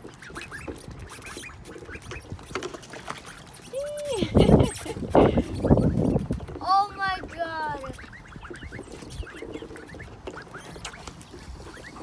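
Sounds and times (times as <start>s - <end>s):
ducks calling: 0.0s - 12.0s
water splashing: 0.0s - 12.0s.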